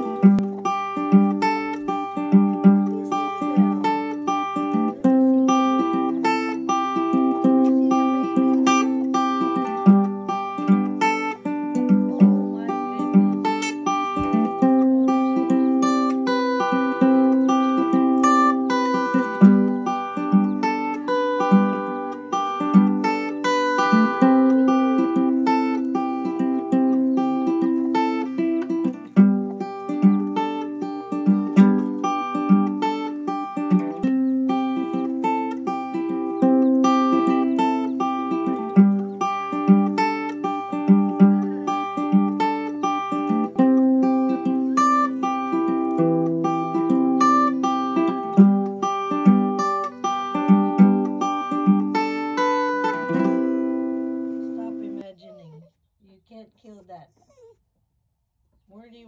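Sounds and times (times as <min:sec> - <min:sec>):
plucked acoustic string melody: 0:00.0 - 0:55.1.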